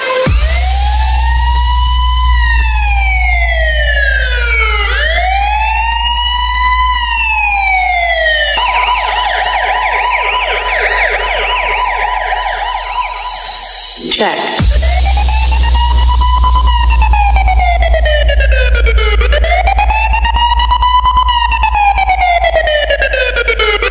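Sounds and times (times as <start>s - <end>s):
deep sub-bass tone: 0.2s - 14.0s, 14.6s - 23.9s
siren wailing and yelping: 0.3s - 23.9s.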